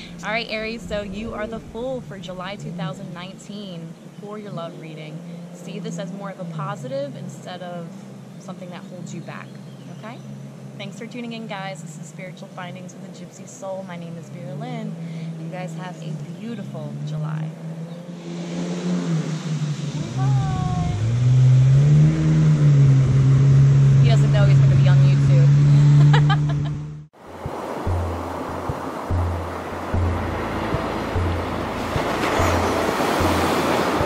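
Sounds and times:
ocean waves: 0.0 - 8.8, 18.1 - 21.4, 27.2 - 34.0
motorboat engine running: 0.0 - 34.0
music with pulsing beat: 27.4 - 34.0.

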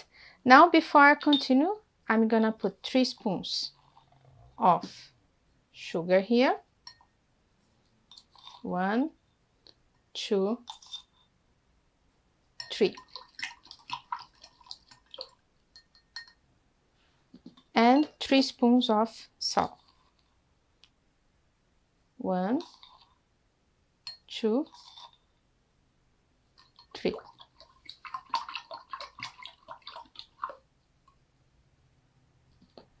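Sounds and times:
spoon clinking against glass: 1.2 - 1.5, 15.7 - 16.4, 24.1 - 24.3
plastic spoon stirring in glass: 8.1 - 8.7, 12.6 - 16.4, 22.6 - 23.2, 24.1 - 25.2, 26.6 - 31.2
water swishing: 12.8 - 15.4, 26.6 - 30.7.

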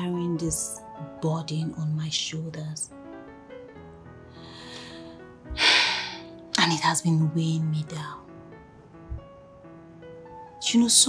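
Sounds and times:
soft background music: 0.0 - 11.0
woman breathing sharply: 4.3 - 6.4.

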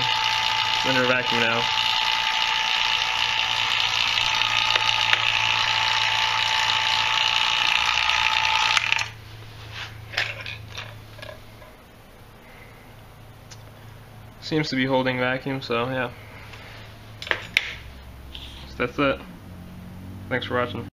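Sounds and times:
vacuum pump whine and hum: 0.0 - 20.7.

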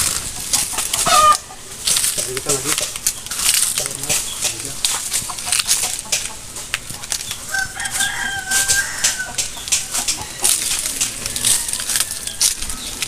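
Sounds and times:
crackling and rustling: 0.0 - 13.0
rooster crowing: 7.5 - 12.9.

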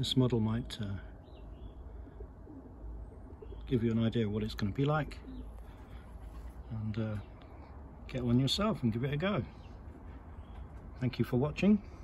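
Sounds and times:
low steady hum: 0.0 - 12.0
faint bird calls: 0.9 - 8.2.

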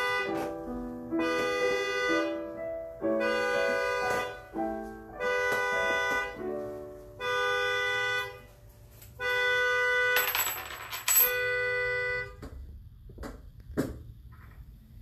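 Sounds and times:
slow keyboard chords: 0.0 - 7.8.

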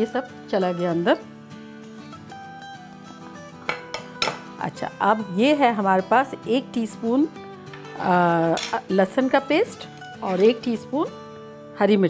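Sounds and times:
soft background music: 0.0 - 12.0
ceramic dishes clinking: 3.7 - 4.5, 7.7 - 8.8.

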